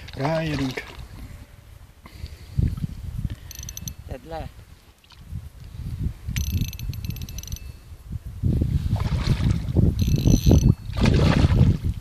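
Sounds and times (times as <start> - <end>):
fishing reel whirring: 3.4 - 4.1, 6.4 - 7.8, 10.0 - 10.9.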